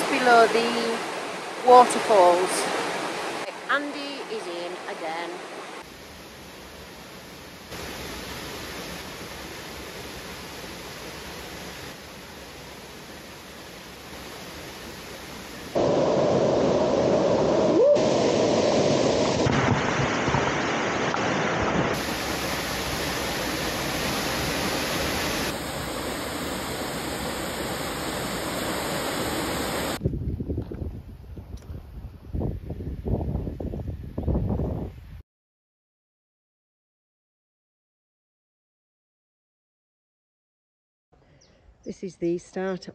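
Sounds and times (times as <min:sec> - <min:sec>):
waterfall rushing: 0:00.0 - 0:05.8, 0:07.7 - 0:30.0.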